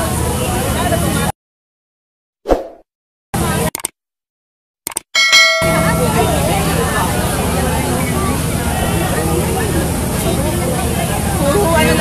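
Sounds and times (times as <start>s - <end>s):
crowd voices: 0.0s - 1.3s, 5.2s - 12.0s
street noise: 0.0s - 1.3s, 5.2s - 12.0s
bright bell ding: 5.2s - 6.6s.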